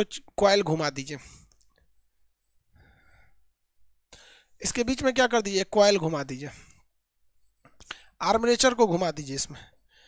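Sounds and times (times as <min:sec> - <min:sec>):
person speaking: 0:00.0 - 0:02.6, 0:04.6 - 0:09.9.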